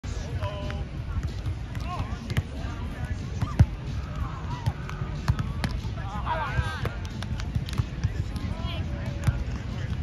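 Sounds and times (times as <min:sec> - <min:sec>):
volleyball slaps: 0:04.6 - 0:05.9, 0:06.8 - 0:08.6.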